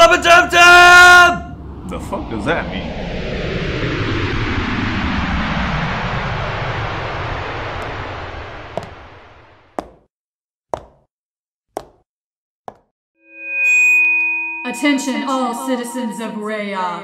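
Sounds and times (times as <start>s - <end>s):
rushing roar falling in pitch: 0.4s - 9.6s
sharp knocks: 9.8s - 10.1s, 10.8s - 11.1s.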